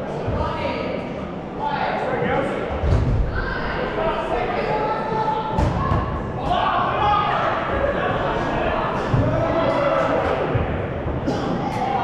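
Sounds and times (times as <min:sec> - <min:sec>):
balls thudding in echoing hall: 0:02.6 - 0:12.0
players shouting: 0:03.2 - 0:10.9.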